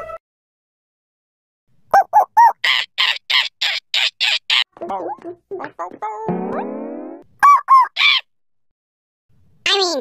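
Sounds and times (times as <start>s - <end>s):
cartoon puppy barking: 1.9s - 6.6s, 7.4s - 8.3s.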